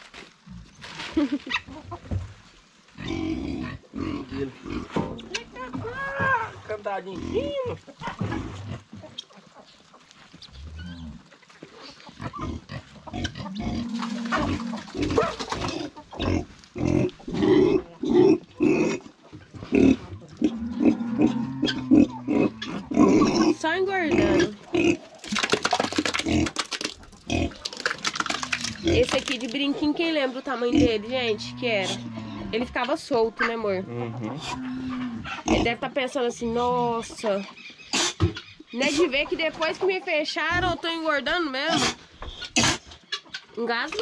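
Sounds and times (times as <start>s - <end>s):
pigs grunting: 3.0s - 9.5s, 10.4s - 40.9s, 41.6s - 43.2s.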